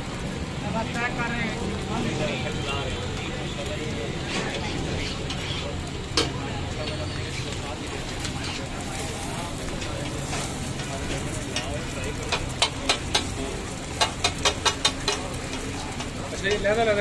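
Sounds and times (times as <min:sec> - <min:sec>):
eggs sizzling on griddle: 0:00.0 - 0:17.0.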